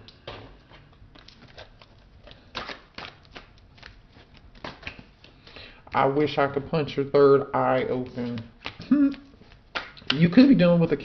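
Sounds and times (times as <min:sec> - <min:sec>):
cards being shuffled: 0:01.1 - 0:05.4.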